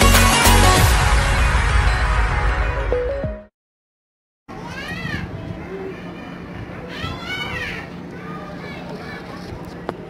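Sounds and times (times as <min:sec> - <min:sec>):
child's high-pitched call: 0:04.5 - 0:09.2.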